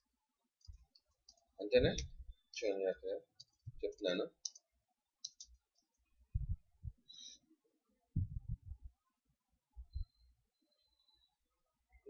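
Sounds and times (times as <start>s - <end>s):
dull low thuds: 6.3s - 7.0s, 8.2s - 8.9s.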